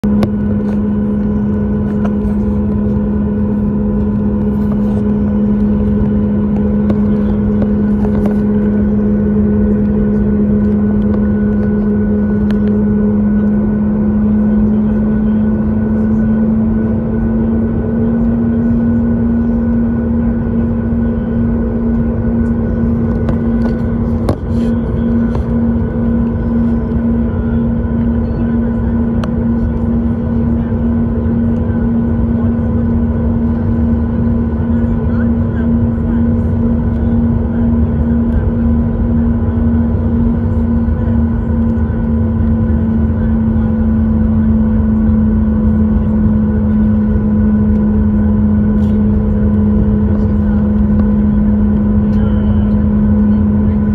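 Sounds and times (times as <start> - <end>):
airplane cabin hum: 0.0 - 53.9.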